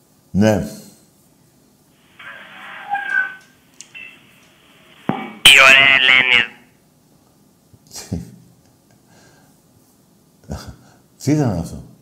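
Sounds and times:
telephone line noise: 2.2s - 6.6s.

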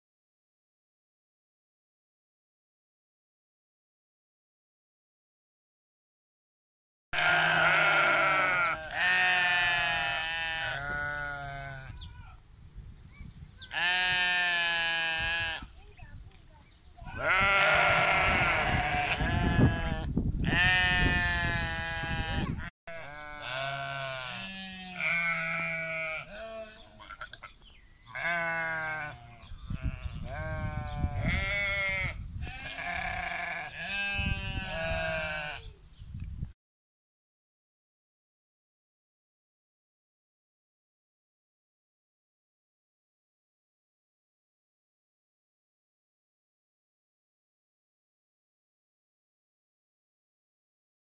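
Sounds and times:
sheep bleating: 7.2s - 12.4s, 13.7s - 15.7s, 17.1s - 35.8s.

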